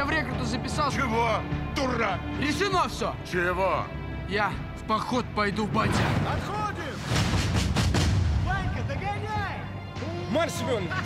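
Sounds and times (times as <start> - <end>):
trailer music: 0.0 - 11.0
deep booming hit: 5.8 - 9.0.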